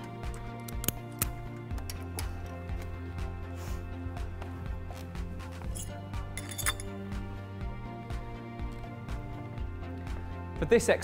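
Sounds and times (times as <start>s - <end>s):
background music with steady beat: 0.0s - 11.0s
light metal clinks of weights: 5.7s - 7.0s.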